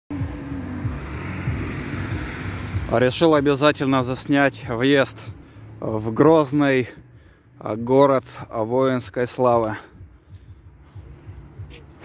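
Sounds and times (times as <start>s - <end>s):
car engine and road hum: 0.1s - 12.0s.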